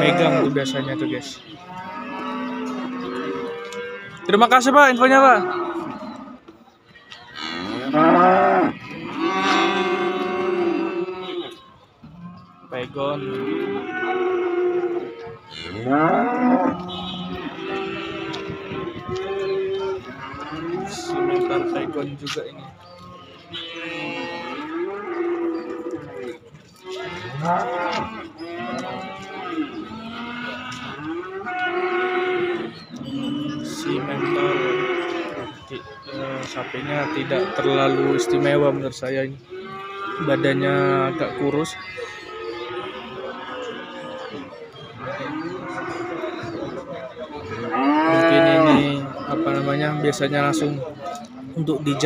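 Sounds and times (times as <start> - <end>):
cow mooing: 0.0 - 4.4, 5.0 - 6.5, 7.4 - 11.5, 13.2 - 22.1, 23.6 - 35.6, 39.5 - 50.6.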